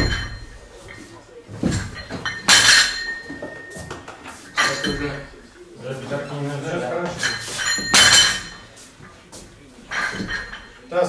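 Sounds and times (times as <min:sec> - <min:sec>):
barbell plates clanking: 0:00.0 - 0:01.0, 0:01.6 - 0:03.8, 0:04.6 - 0:05.4, 0:07.1 - 0:08.6, 0:09.9 - 0:10.9.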